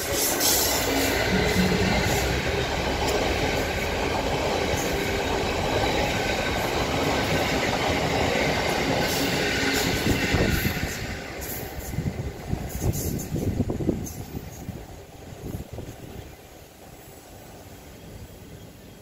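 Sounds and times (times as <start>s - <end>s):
wagons rumbling over rails: 0.0s - 17.5s
diesel locomotive engine passing: 0.0s - 17.6s.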